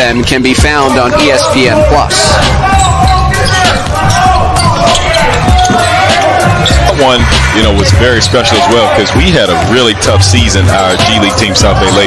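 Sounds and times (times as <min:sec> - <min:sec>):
shoe squeaks: 0:02.3 - 0:06.9.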